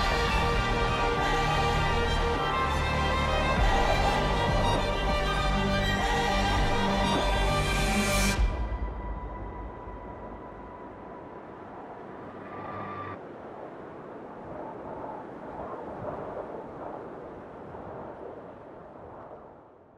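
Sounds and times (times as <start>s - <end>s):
steady rushing noise: 0.0s - 19.5s.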